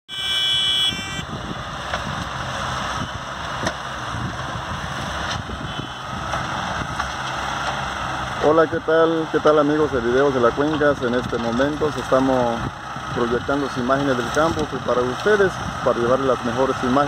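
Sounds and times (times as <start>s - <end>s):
tractor and loader engines running: 0.1s - 17.0s.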